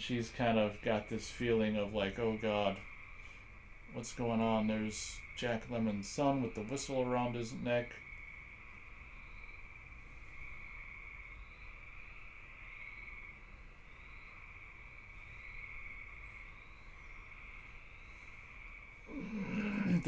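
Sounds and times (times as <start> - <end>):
night insects chirring: 0.0 - 20.0.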